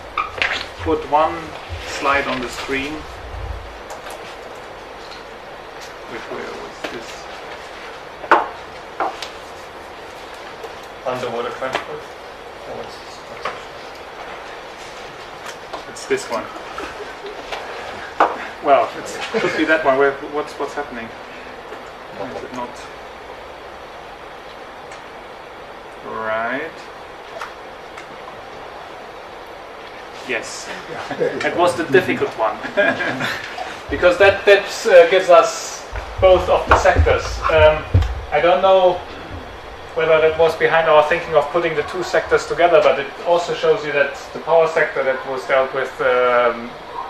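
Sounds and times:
room noise: 0:00.0 - 0:47.0.

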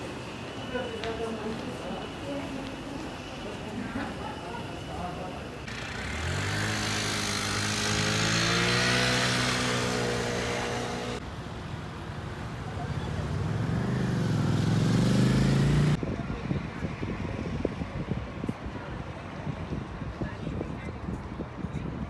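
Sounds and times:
car pulling away: 0:05.6 - 0:11.2, 0:12.8 - 0:16.0
vehicle engine running: 0:05.6 - 0:11.2.

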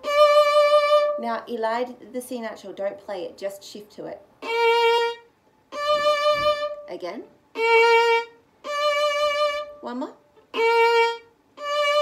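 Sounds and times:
violin slow bowed notes: 0:00.0 - 0:01.4, 0:04.4 - 0:12.0.

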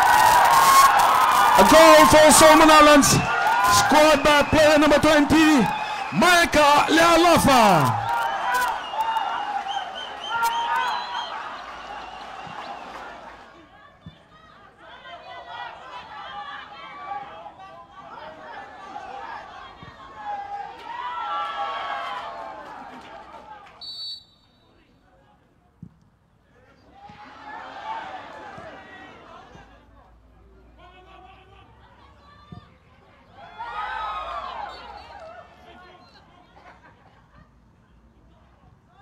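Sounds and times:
football crowd cheering and shouting: 0:00.0 - 0:24.2, 0:26.8 - 0:29.9, 0:30.6 - 0:36.8
referee's whistle blast: 0:01.6 - 0:09.1, 0:09.7 - 0:11.4, 0:23.8 - 0:24.8.

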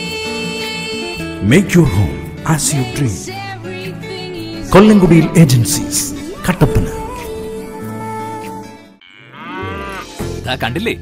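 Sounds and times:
cow mooing: 0:09.0 - 0:10.2.

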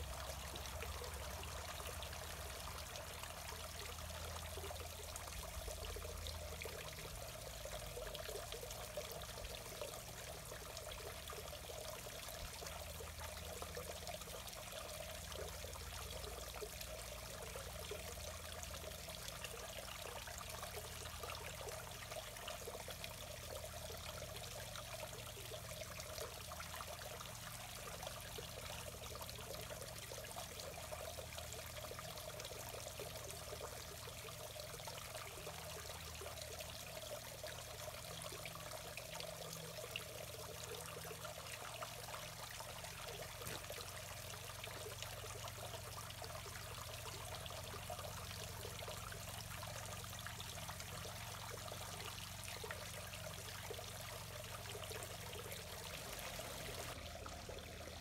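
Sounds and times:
creek water trickling: 0:00.0 - 0:58.0.

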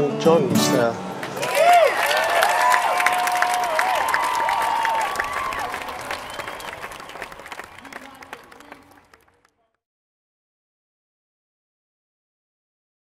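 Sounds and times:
audience clapping and whooping: 0:01.2 - 0:09.6.

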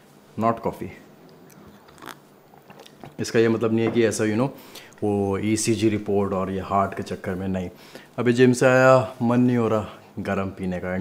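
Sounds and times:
soft mouth clicks: 0:01.3 - 0:03.1
person sipping and swallowing: 0:01.4 - 0:03.2.

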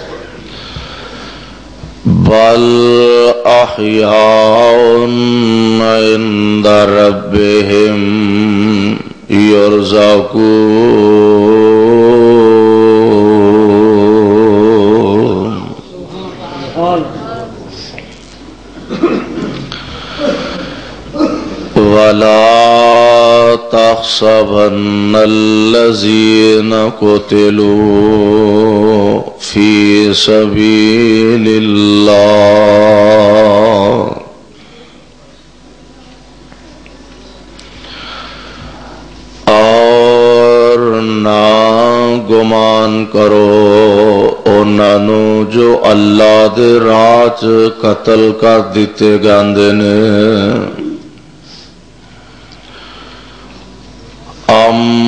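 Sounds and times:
man chanting through microphones: 0:01.8 - 0:17.6, 0:21.6 - 0:34.5, 0:38.6 - 0:51.1, 0:54.3 - 0:55.0
man reciting melodically: 0:01.9 - 0:17.4, 0:19.8 - 0:34.5, 0:39.4 - 0:51.2, 0:54.3 - 0:55.0.

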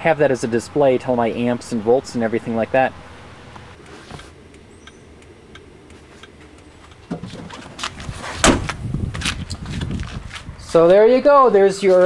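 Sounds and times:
rustling and movement: 0:03.0 - 0:04.7, 0:05.3 - 0:11.0
car door closing thud: 0:08.3 - 0:08.8.

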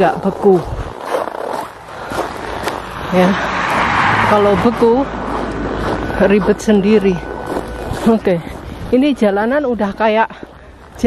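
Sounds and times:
footsteps crunching on snow: 0:00.0 - 0:11.0.

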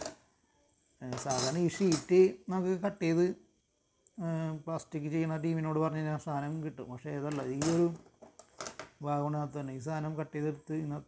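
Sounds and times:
man speaking: 0:09.0 - 0:11.0.

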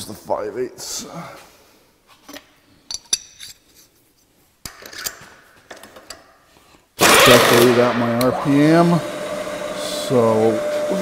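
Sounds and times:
metal tooling clinking: 0:02.3 - 0:03.9.

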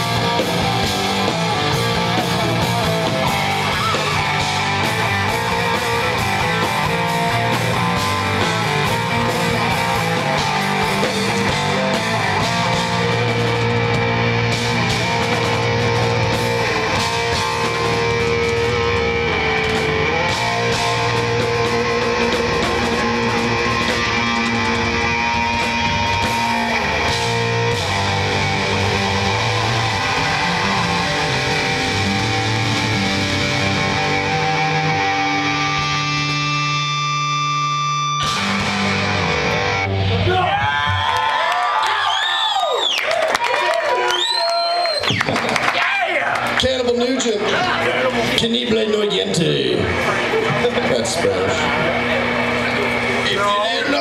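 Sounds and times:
heavy metal band playing: 0:00.0 - 0:41.4, 0:45.0 - 0:54.0.

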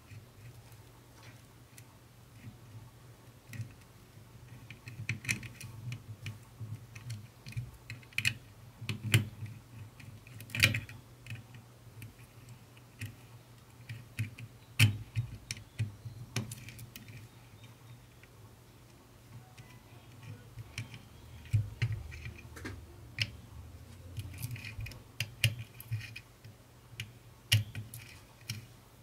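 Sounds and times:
faint low hum: 0:00.0 - 0:29.0.

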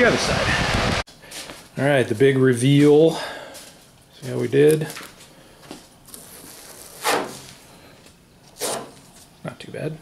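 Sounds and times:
masking tape peeling: 0:06.0 - 0:07.6, 0:08.6 - 0:09.0.

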